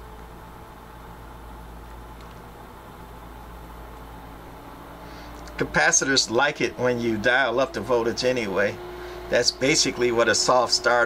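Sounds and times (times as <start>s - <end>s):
cooling fan whir: 0.0s - 11.0s
mains hum: 0.0s - 11.0s.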